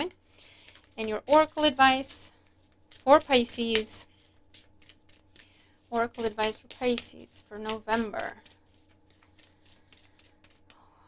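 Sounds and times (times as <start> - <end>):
cards being shuffled: 0.4 - 10.8.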